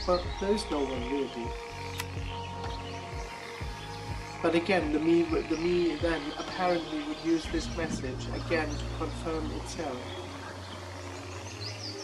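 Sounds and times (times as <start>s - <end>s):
soft ambient background music: 0.0s - 12.0s.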